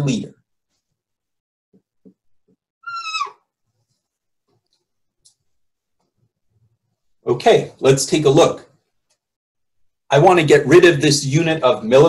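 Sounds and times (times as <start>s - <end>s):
marker squeaking on paper: 2.8s - 3.5s.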